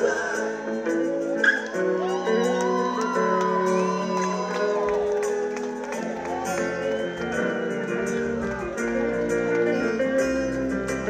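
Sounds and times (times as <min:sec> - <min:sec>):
live band music: 0:00.0 - 0:11.0.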